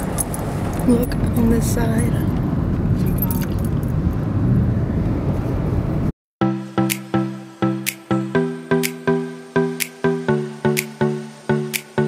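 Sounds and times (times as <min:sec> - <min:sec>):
road and wind noise in car: 0:00.0 - 0:06.2.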